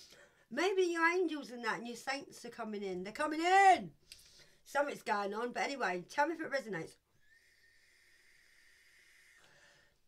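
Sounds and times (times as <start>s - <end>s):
thin whistle from vape draw: 7.2s - 9.6s.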